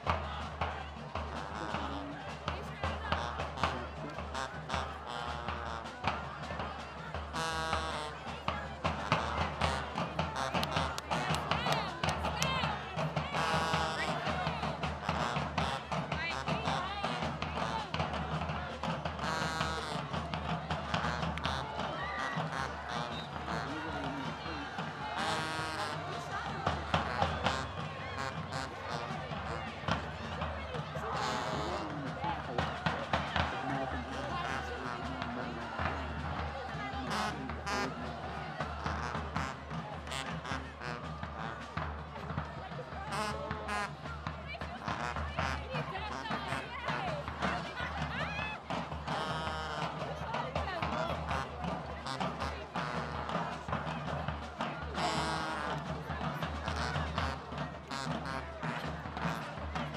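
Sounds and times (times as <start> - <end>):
marching band playing: 0.0 - 59.9
voices: 0.0 - 59.9.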